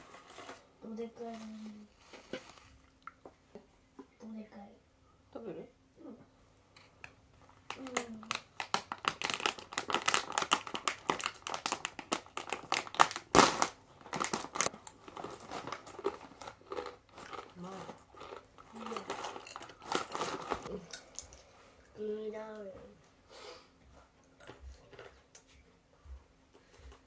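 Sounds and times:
plastic snack bag crinkling: 7.4 - 20.7
plastic bag tearing: 7.8 - 20.7.

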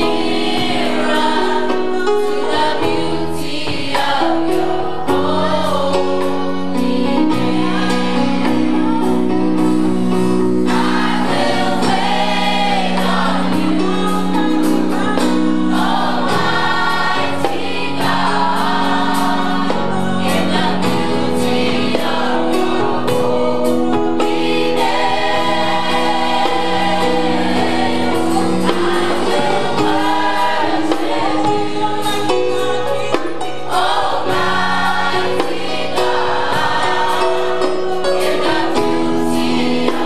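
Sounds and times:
gospel choir singing: 0.0 - 40.0
instrumental backing: 0.0 - 40.0.

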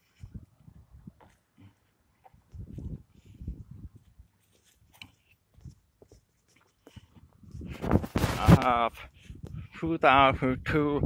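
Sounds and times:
faint scuffs and taps: 0.0 - 9.6.

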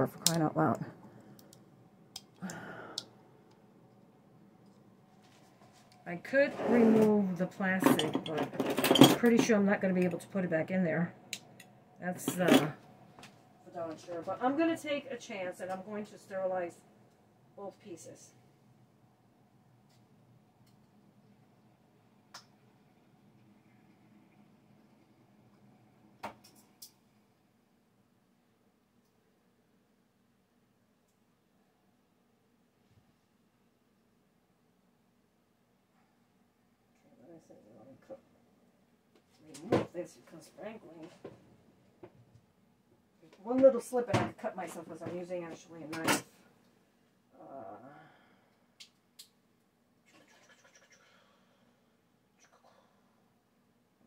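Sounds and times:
faint scraping: 5.2 - 8.0.

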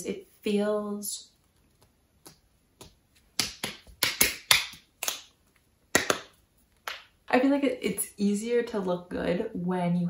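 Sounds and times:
hands snapping and clapping: 2.2 - 7.1.

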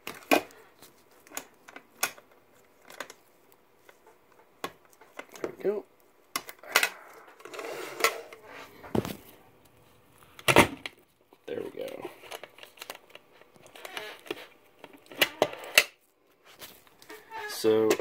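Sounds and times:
handling rustle: 0.0 - 6.3, 16.0 - 18.0.

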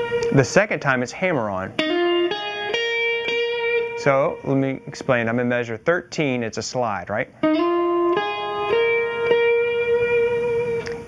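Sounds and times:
blues guitar notes: 0.0 - 11.0.

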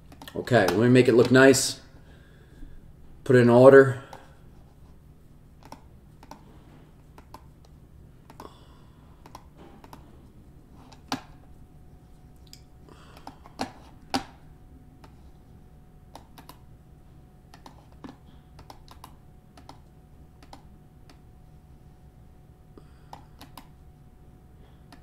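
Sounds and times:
faint low hum: 0.0 - 25.0
keyboard typing: 5.6 - 6.5, 16.1 - 16.6, 17.5 - 21.2, 23.0 - 23.7.

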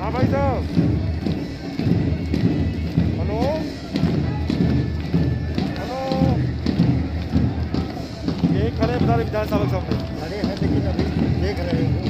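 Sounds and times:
parade music: 0.0 - 12.0
thumping drumbeats: 0.0 - 12.0
voices: 0.0 - 12.0.

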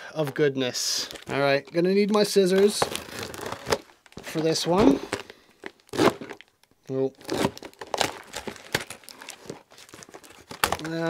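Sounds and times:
tape and cardboard crinkling: 0.3 - 11.0.

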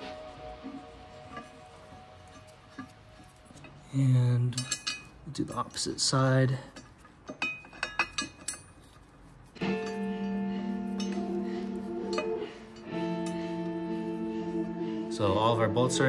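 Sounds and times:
background music with held notes: 0.0 - 3.7, 9.6 - 16.0
light metallic clinks of bolts: 3.6 - 8.8.

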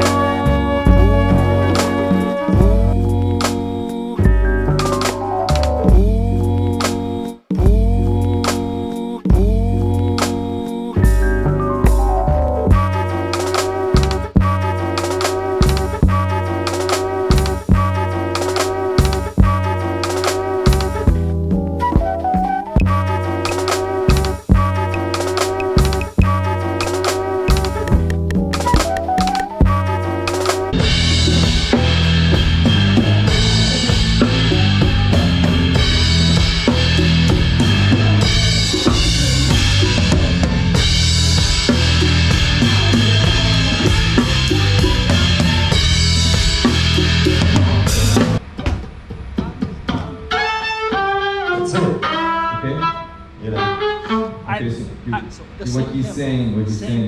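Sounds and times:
band playing loud: 0.0 - 48.6
drums and cymbals: 0.0 - 50.3
quiet stage sounds: 0.0 - 57.0
person speaking: 0.9 - 4.2, 51.7 - 57.0.

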